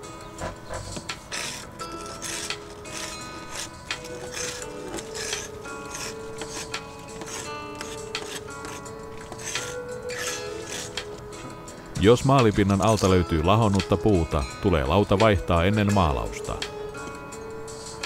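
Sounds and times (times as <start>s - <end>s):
paint scraper scraping wood: 0.0s - 11.6s
background music with held notes: 0.0s - 18.0s.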